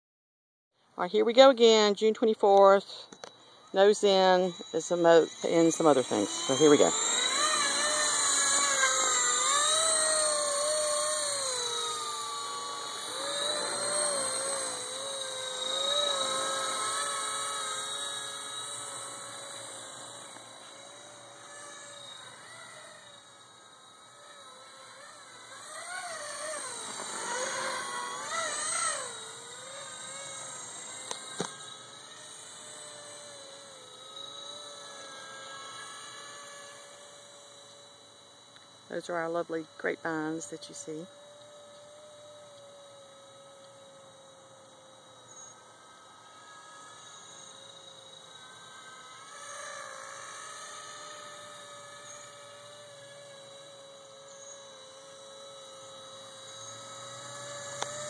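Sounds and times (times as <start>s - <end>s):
rc helicopter whining: 1.0s - 58.0s.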